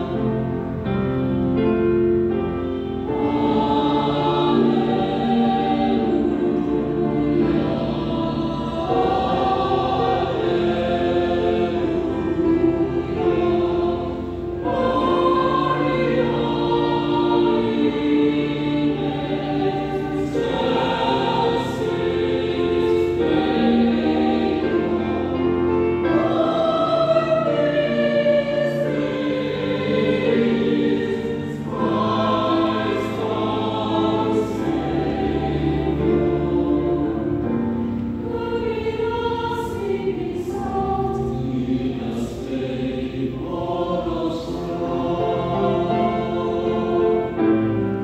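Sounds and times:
church choir singing in harmony: 0.0 - 48.0
keyboard accompaniment: 0.0 - 48.0.

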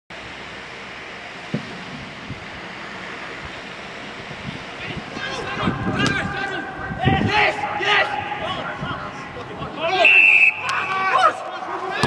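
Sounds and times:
wind noise on microphone: 1.5 - 2.6, 3.4 - 9.8.

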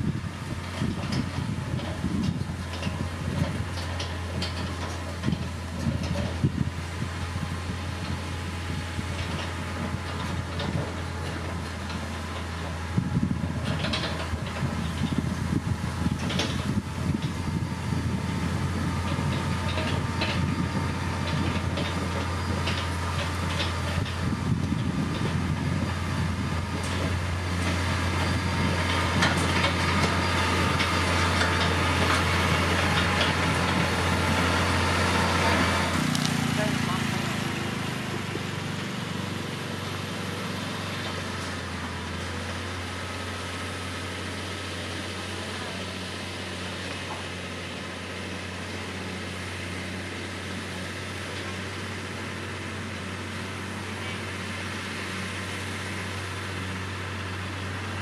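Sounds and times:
diesel engine of grader running: 0.0 - 58.0.

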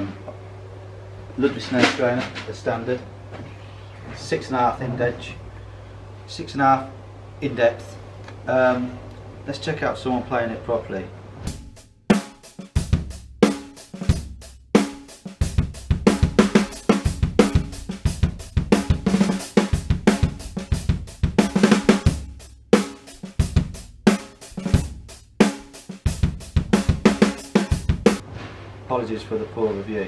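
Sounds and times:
bass drum: 11.5 - 28.2
snare drum: 11.5 - 28.2
cymbals: 11.5 - 28.3.

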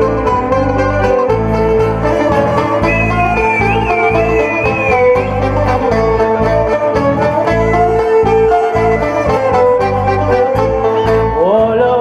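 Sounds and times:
plucked long-necked lute: 0.0 - 11.7
bass notes: 0.0 - 12.0
violin: 0.0 - 12.0
high wavering melody: 2.0 - 11.0.

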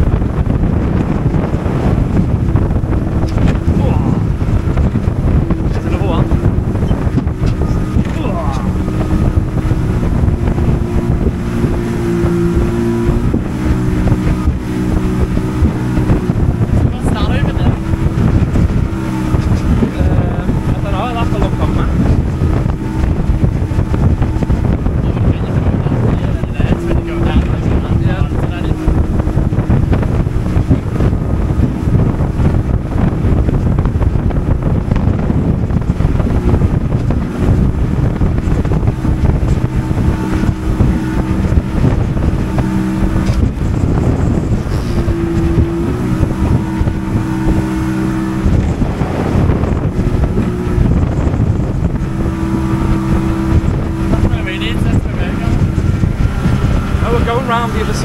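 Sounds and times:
motorboat engine running: 0.0 - 58.0
wind on microphone: 0.0 - 58.0.

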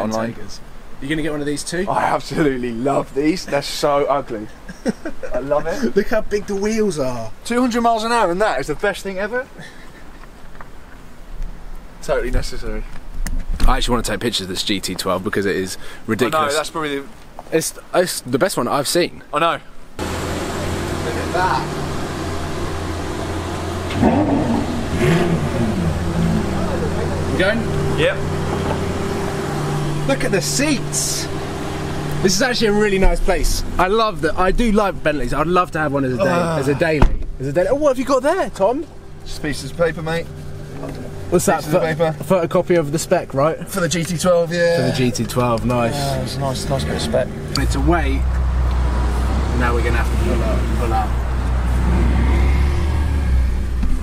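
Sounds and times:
road noise: 0.0 - 54.0
car engine idling: 20.0 - 54.0.

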